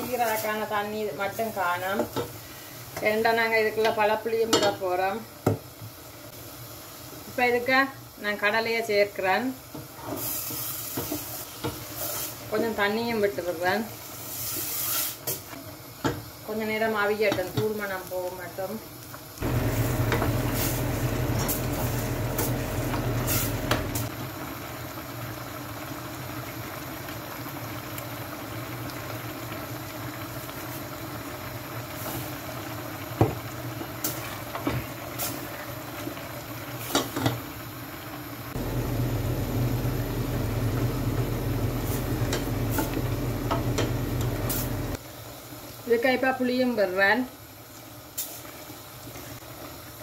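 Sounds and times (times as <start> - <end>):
curry simmering in a pot: 0.1 - 21.4, 22.1 - 50.0
steady low hum: 38.6 - 45.0.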